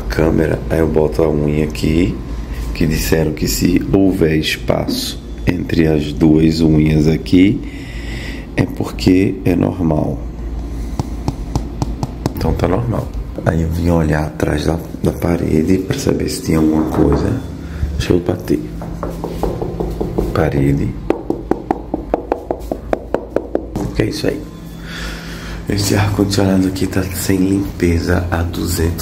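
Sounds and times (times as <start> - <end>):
steady low hum: 0.0 - 29.0
knuckles rapping on a wall: 11.0 - 12.5, 18.8 - 20.4, 21.1 - 23.9
fingernail tapping on glass: 18.8 - 20.4, 21.1 - 23.8.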